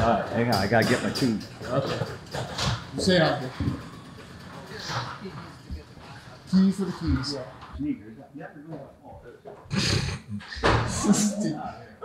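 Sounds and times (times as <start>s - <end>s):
men talking quietly: 0.0s - 12.0s.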